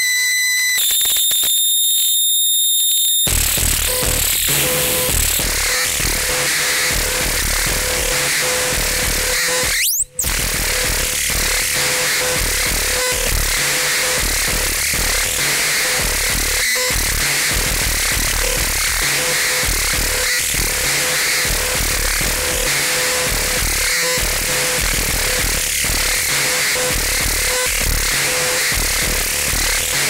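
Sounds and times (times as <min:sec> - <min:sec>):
experimental electronic music: 0:03.3 - 0:30.0.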